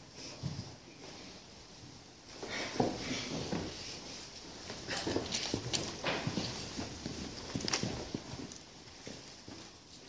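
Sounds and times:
footsteps in a church: 0:00.0 - 0:10.0
people shuffling: 0:00.0 - 0:10.0.

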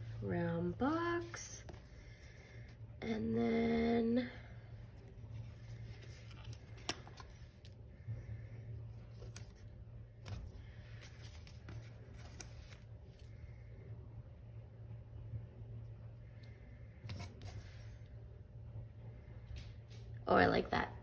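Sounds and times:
faint low hum: 0:00.0 - 0:21.0
paper crinkles and clicks: 0:05.6 - 0:07.7, 0:09.1 - 0:13.3.

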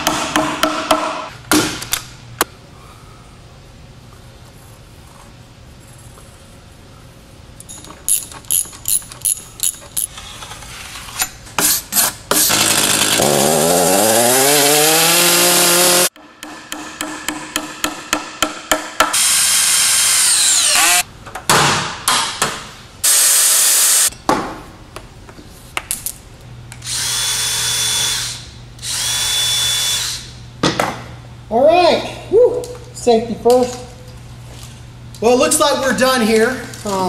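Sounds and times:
hammer hitting a nail: 0:00.0 - 0:01.8, 0:16.4 - 0:19.2
power drill: 0:19.1 - 0:21.0, 0:23.0 - 0:24.1, 0:26.8 - 0:30.3.

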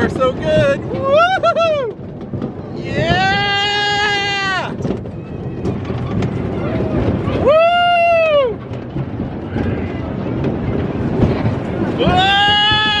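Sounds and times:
ride car rumble and wind: 0:00.0 - 0:13.0.

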